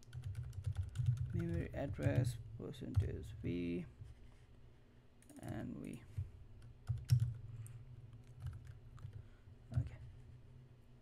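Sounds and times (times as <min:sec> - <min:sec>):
computer keyboard keystrokes: 0:00.0 - 0:02.3, 0:05.2 - 0:07.4, 0:08.1 - 0:09.2.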